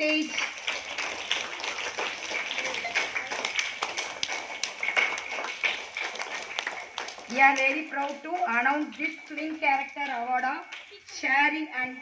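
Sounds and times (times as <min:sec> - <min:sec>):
children clapping unevenly: 0:00.0 - 0:11.1.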